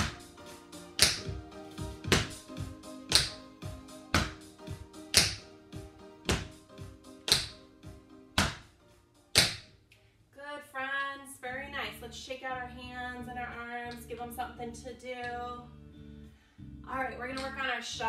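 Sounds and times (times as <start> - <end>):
background music: 0.0 - 18.0
tap shoes on hard floor: 2.0 - 2.4, 4.1 - 4.4, 6.3 - 6.6.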